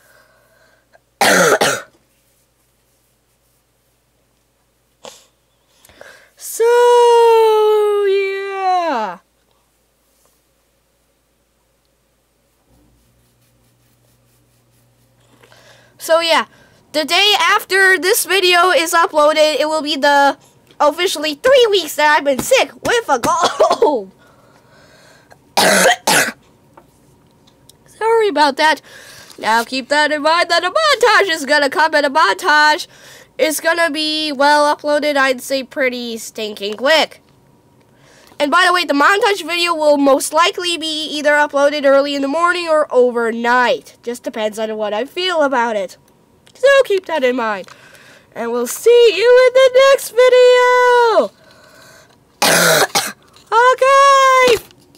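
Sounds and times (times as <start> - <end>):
person coughing: 1.2 - 2.0, 23.3 - 24.0, 25.6 - 26.4, 52.4 - 53.2.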